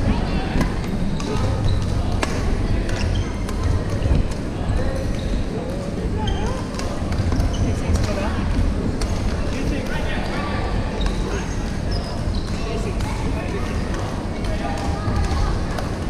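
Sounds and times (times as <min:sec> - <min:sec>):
indistinct chatter: 0:00.0 - 0:16.0
sports hall rumble: 0:00.0 - 0:16.0
shoes squeaking on wooden floor: 0:05.2 - 0:09.7.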